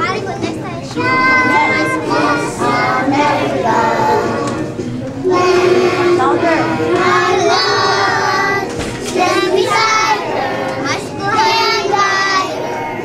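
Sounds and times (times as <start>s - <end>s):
children singing together: 0.1s - 13.0s.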